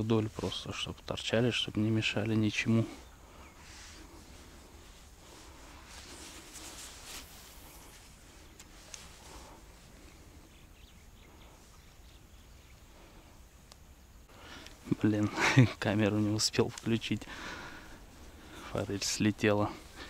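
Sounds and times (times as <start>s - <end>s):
soft rustling on grass: 0.0s - 20.0s.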